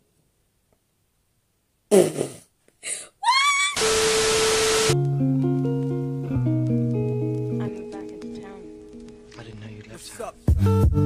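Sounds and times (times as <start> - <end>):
loud hiss with steady tone: 0.0 - 5.0
noisy burst: 3.8 - 5.0.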